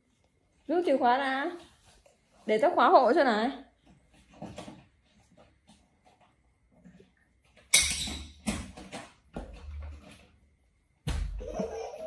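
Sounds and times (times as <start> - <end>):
stifled laughter: 11.4 - 12.0.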